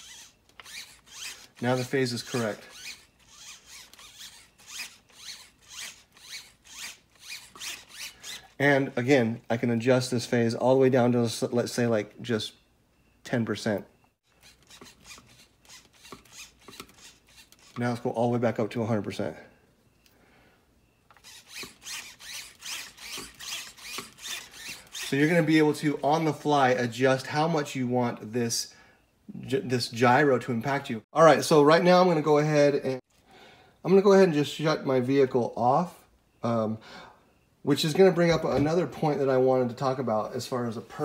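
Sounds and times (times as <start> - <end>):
steering servo whirring: 0.0 - 8.6, 14.3 - 17.8, 21.1 - 26.0.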